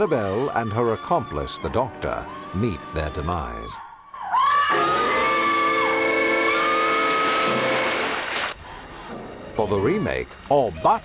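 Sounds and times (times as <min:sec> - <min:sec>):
woman screaming: 0:04.1 - 0:07.6.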